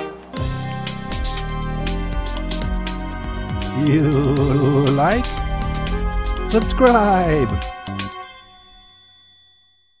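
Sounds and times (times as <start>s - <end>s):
bell-like ding: 7.9s - 10.0s.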